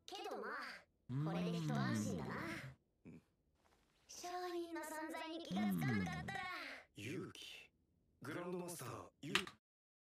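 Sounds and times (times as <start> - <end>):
character voice speaking: 1.1 - 2.8, 5.5 - 6.5.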